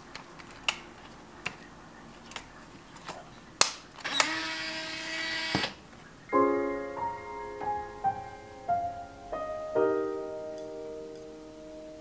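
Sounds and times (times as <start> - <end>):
camera motor whirring: 4.1 - 5.7.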